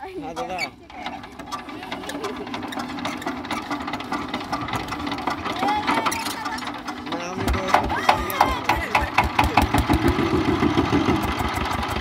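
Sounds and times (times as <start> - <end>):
diesel engine clattering: 0.0 - 12.0.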